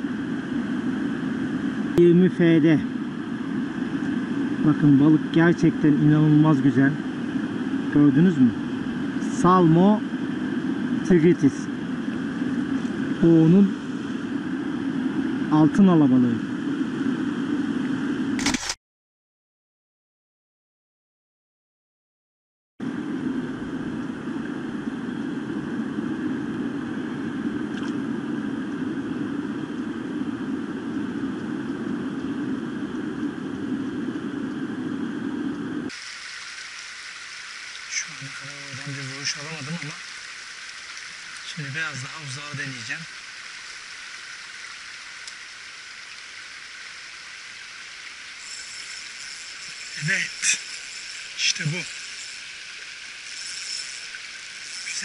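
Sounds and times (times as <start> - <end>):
sharp clicks: 18.4 - 18.8
stream water rushing: 35.9 - 55.0
man speaking: 37.9 - 40.0, 41.5 - 43.1, 50.0 - 50.6, 51.4 - 51.9.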